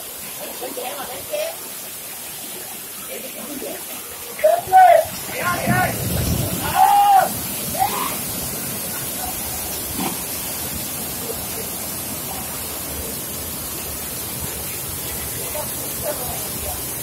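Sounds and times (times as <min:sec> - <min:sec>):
water splashing on turbine blades: 0:00.2 - 0:17.0.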